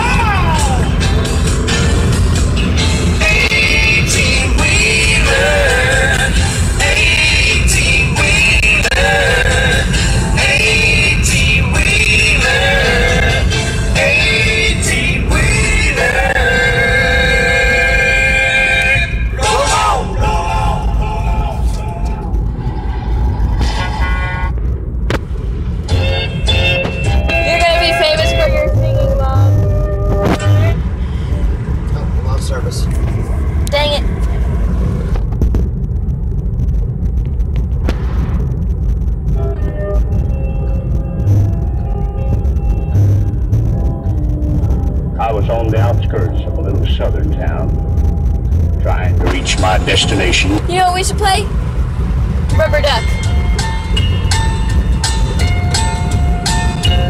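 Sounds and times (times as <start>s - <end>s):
music playing: 0.0s - 22.4s, 25.8s - 31.8s, 39.3s - 51.5s, 52.4s - 57.0s
car cabin rumble: 0.0s - 57.0s.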